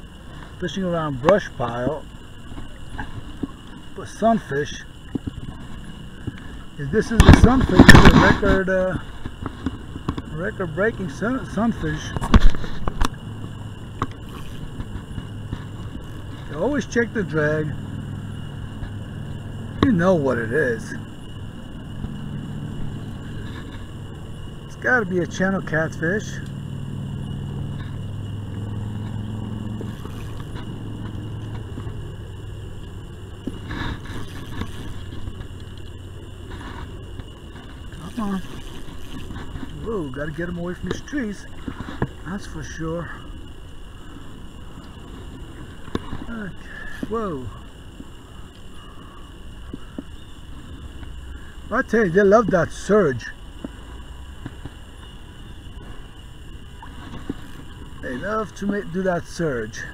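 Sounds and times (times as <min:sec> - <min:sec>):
wind rumble on microphone: 0:00.0 - 0:51.8
faint water sounds: 0:00.0 - 0:59.9
low engine hum: 0:00.0 - 0:59.9
thin high whine: 0:00.0 - 0:59.9.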